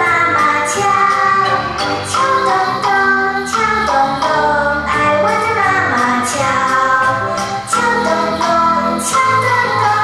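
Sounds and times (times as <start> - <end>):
child singing over music: 0.0 - 10.0.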